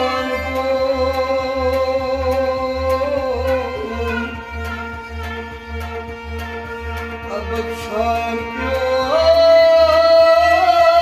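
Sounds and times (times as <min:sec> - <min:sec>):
man singing a long held note: 0:00.0 - 0:04.9, 0:07.3 - 0:11.0
low repeating pulse: 0:00.0 - 0:10.7
harmonium: 0:00.0 - 0:11.0.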